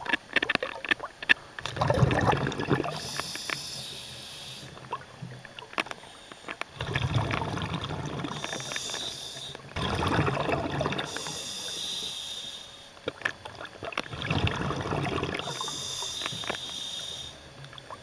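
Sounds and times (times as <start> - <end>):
diver breathing underwater: 2.0 - 4.8, 6.0 - 13.0, 14.1 - 17.6.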